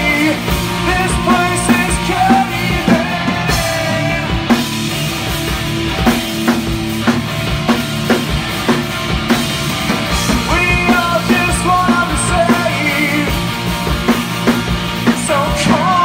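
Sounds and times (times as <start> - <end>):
bass guitar: 0.0 - 16.0
drum kit steady beat: 0.0 - 16.0
electric guitars: 0.0 - 16.0.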